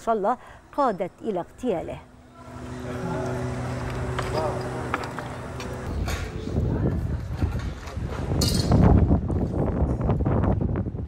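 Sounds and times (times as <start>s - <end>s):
wind buffeting microphone: 5.7s - 11.0s.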